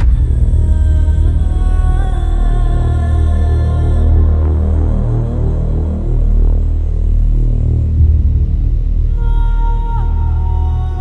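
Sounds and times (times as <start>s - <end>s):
low droning bass music: 0.0s - 11.0s.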